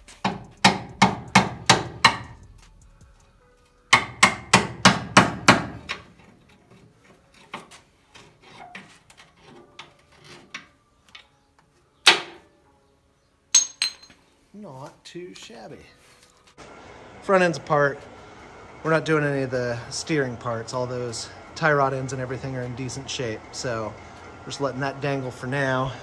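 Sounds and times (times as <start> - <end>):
hammer striking metal punch: 0.2 - 2.4, 3.9 - 5.8, 13.6 - 14.1
ringing metallic clinks: 13.6 - 14.2.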